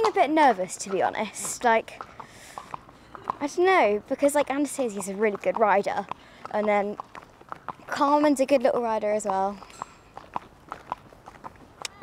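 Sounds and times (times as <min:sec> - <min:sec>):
horse hooves clip-clopping on tarmac: 0:00.0 - 0:12.0.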